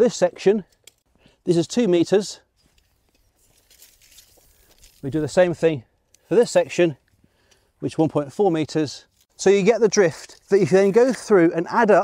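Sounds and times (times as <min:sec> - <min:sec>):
faint rustling and crinkling: 0:02.4 - 0:07.7, 0:09.0 - 0:09.4.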